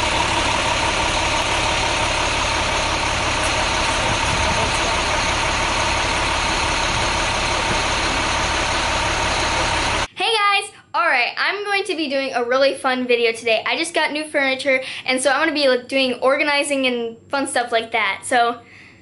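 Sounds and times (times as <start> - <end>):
truck engine idling: 0.0 - 10.1.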